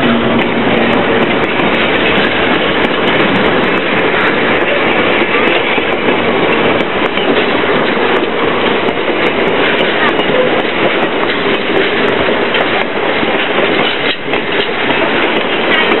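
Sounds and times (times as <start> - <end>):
train wheels clattering on rails: 0.0 - 16.0.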